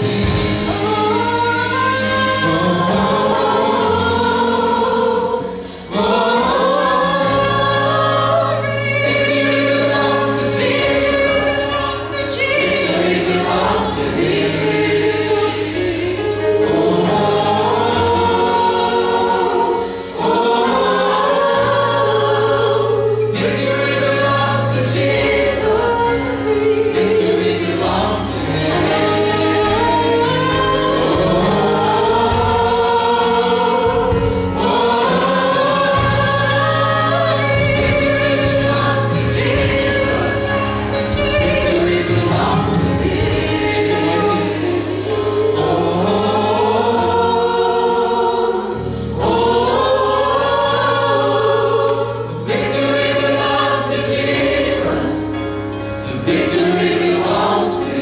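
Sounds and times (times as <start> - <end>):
keyboard chords: 0.0 - 58.0
women singing in harmony: 0.0 - 58.0
bass notes: 6.0 - 58.0.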